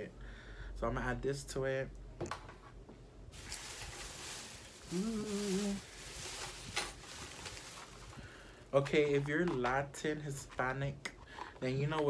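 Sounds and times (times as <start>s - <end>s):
bag and packaging rustling: 3.3s - 9.6s
man humming: 4.8s - 5.9s.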